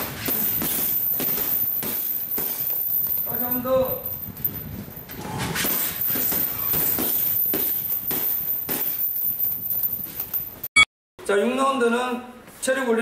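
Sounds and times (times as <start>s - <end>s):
gloves punching heavy bags: 0.0s - 3.5s, 5.5s - 10.3s.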